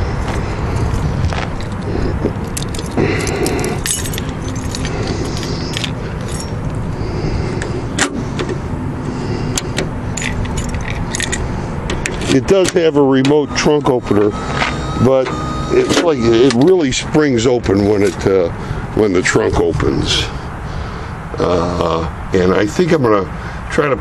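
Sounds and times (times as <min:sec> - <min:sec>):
steady low hum: 0:00.0 - 0:24.0
keys jangling: 0:00.7 - 0:06.8, 0:10.2 - 0:11.5.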